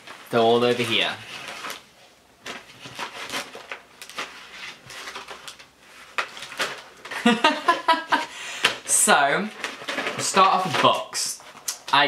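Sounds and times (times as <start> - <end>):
plastic packs crinkling: 0.0 - 12.0.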